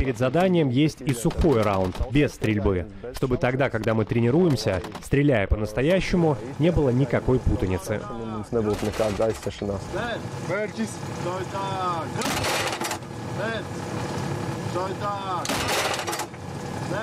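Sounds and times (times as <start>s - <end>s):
man speaking: 0.0s - 12.3s
vehicle engine running: 0.0s - 17.0s.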